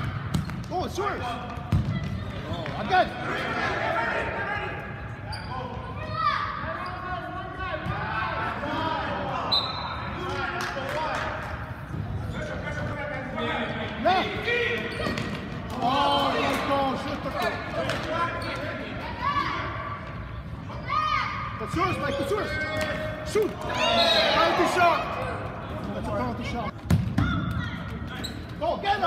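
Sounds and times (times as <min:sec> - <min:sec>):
voices calling out echoing: 0:00.0 - 0:29.0.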